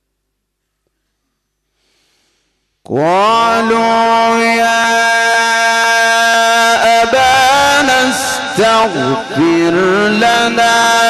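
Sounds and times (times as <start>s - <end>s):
man reciting a long held note: 2.9s - 11.0s.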